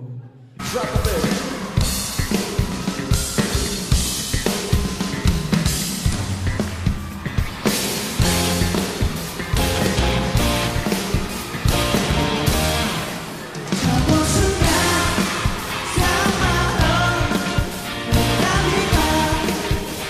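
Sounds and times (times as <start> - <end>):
rock band playing: 0.6 - 20.0.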